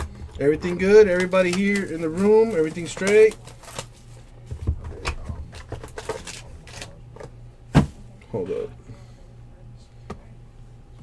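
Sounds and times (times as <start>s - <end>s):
cardboard and wrapping rustling: 0.9s - 6.9s.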